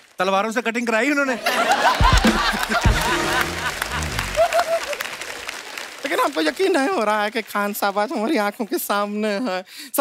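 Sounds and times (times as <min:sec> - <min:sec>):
audience applause: 0:01.5 - 0:08.6.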